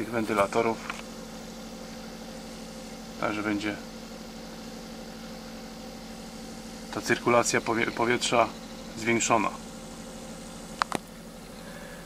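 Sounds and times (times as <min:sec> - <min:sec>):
air conditioner humming: 0:00.0 - 0:12.0.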